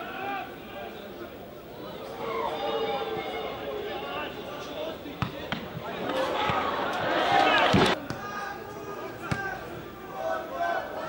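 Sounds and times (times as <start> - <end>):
players shouting: 1.8 - 11.0.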